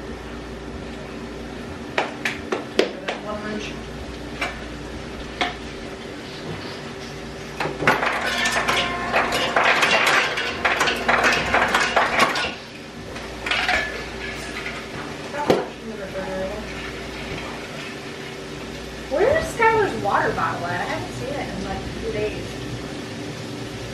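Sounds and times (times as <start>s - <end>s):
steady low hum: 0.0s - 23.9s
pots and pans clattering: 6.3s - 18.5s.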